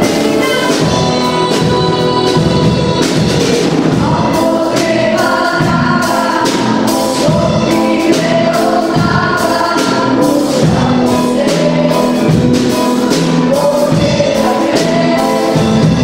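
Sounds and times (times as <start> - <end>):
accordion: 0.0 - 16.0
children's choir singing: 0.0 - 16.0
double bass: 0.0 - 16.0.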